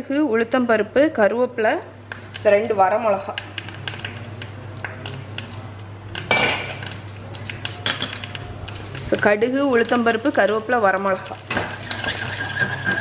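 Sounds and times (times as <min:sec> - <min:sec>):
utensils clinking against pan: 0:06.2 - 0:13.0.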